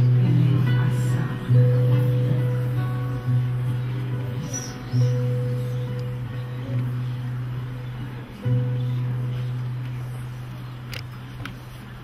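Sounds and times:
acoustic guitars playing soft chords: 0.0 - 12.0.

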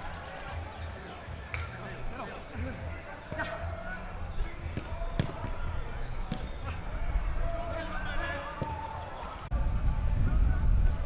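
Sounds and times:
players calling out: 0.0 - 9.5.

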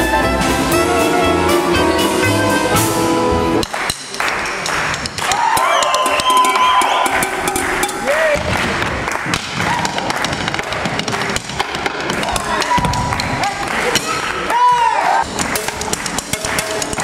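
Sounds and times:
band music with accordion: 0.0 - 3.6
crowd voices: 0.0 - 17.0.

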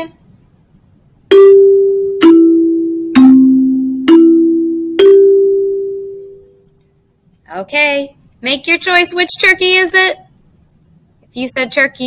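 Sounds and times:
bell-like struck notes: 1.3 - 6.6.

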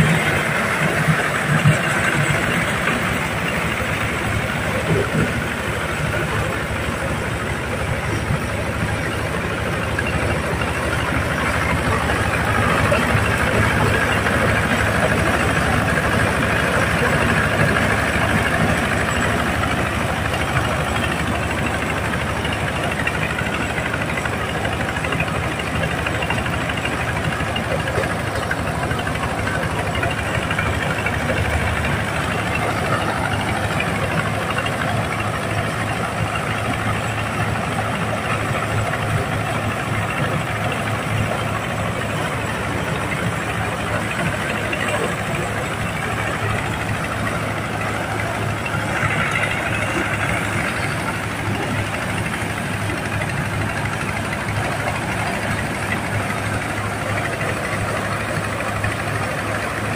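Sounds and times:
diesel engine running under load: 0.0 - 59.9.

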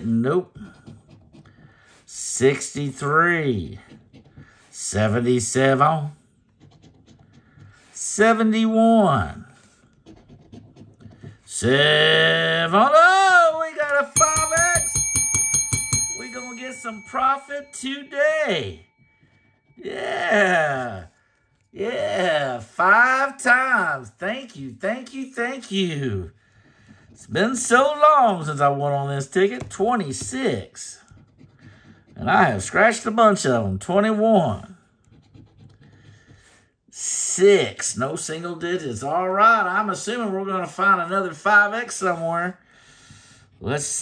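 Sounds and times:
bell ringing rapidly: 14.2 - 19.3.

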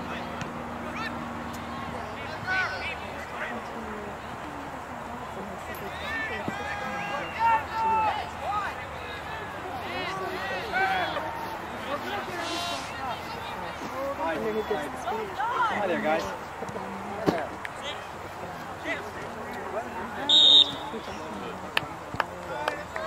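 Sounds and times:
players and spectators shouting: 0.0 - 3.9, 5.7 - 17.2, 17.8 - 21.6.

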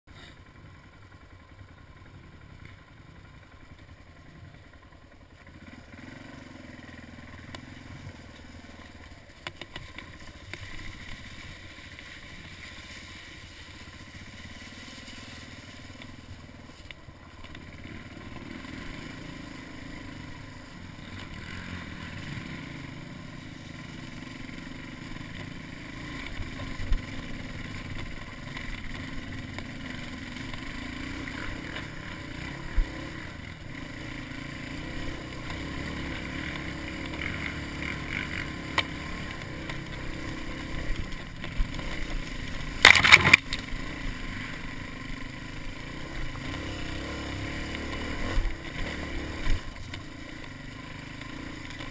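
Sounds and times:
dirt bike engine pulling under load: 2.4 - 51.9.

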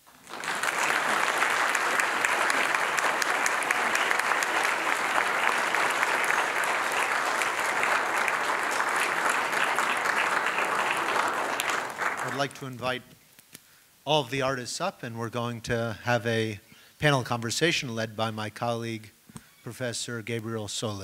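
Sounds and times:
audience applause: 0.0 - 12.8.

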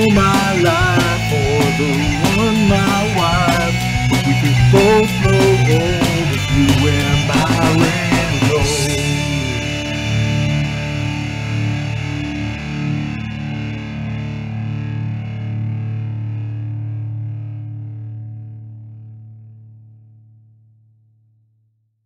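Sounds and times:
distorted electric guitar chord ringing: 0.0 - 19.9.

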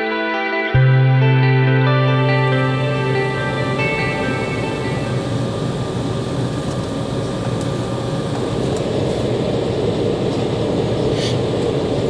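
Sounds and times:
background music: 0.0 - 5.5
airplane cabin engine rumble: 1.9 - 12.0.

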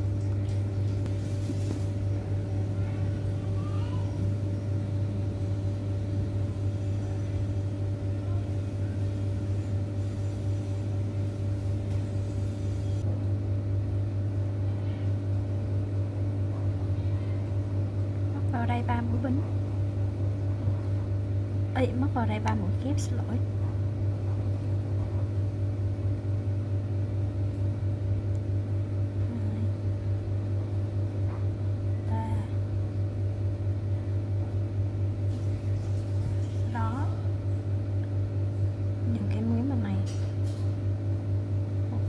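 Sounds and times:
appliance motor humming: 0.0 - 13.8.

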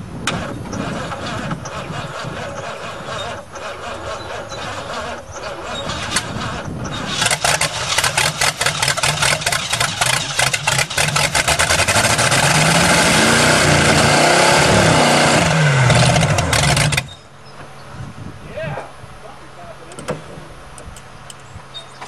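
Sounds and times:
engine cranking on starter: 0.2 - 17.1.

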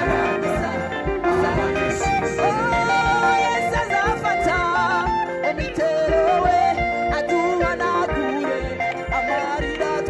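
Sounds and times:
drum kit beat: 0.0 - 10.0
electric guitar: 0.0 - 10.0
gospel choir singing: 0.0 - 10.0
keyboards: 0.0 - 10.0.

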